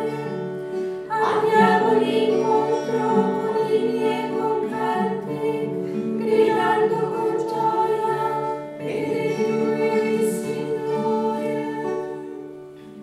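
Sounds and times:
choir of women chanting: 0.0s - 12.4s.

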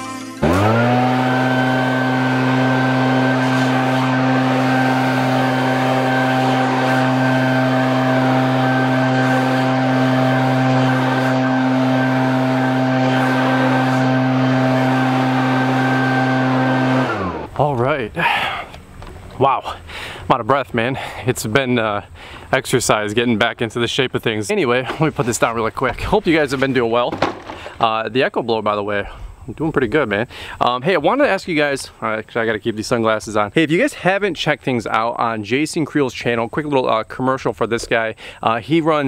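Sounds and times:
leaf blower engine: 0.4s - 19.1s.

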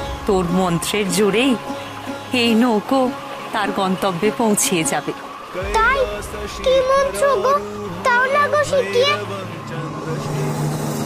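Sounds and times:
hissing background score: 0.0s - 11.0s
low steady drone: 0.0s - 11.0s
girl speaking: 6.7s - 9.2s.

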